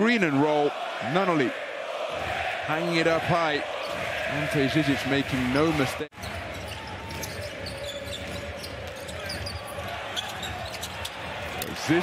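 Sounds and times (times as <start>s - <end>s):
crowd noise: 0.0s - 12.0s
basketball bouncing on court: 6.2s - 11.6s.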